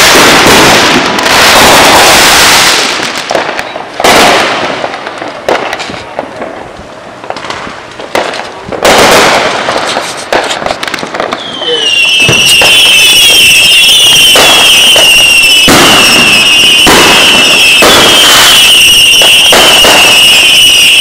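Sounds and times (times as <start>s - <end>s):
firework bangs and crackling: 0.0s - 21.0s
high-pitched firework whine: 0.0s - 21.0s.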